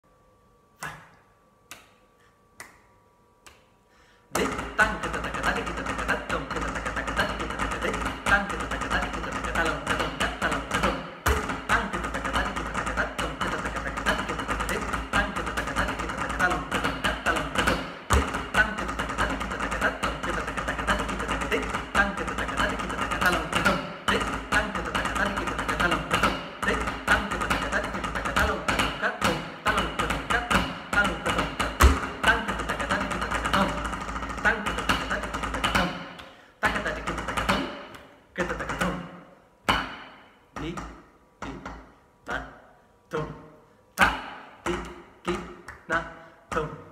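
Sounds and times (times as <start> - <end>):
person reciting rhythm syllables: 0.8 - 2.0, 4.3 - 46.9
snare drumming with sticks: 4.4 - 41.9.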